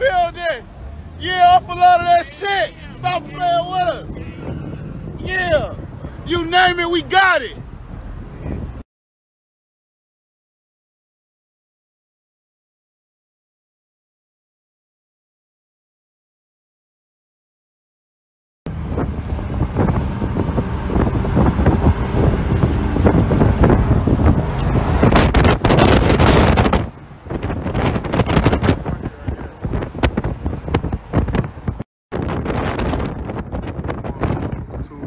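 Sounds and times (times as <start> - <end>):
road noise: 0.0 - 8.8, 18.7 - 35.0
wind buffeting microphone: 0.0 - 8.8, 18.7 - 35.0.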